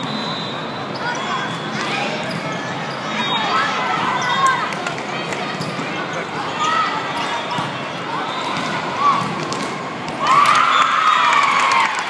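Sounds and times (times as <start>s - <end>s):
many overlapping voices: 0.0s - 10.4s
sneaker squeaks on court: 0.9s - 3.4s, 5.5s - 7.8s.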